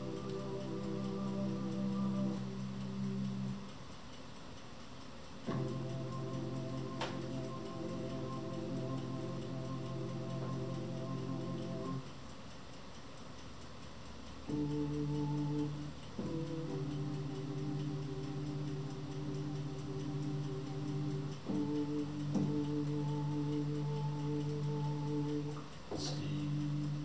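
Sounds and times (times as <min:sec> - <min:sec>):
synthesizer held chords: 0:00.0 - 0:03.7, 0:05.5 - 0:12.1, 0:14.5 - 0:27.0.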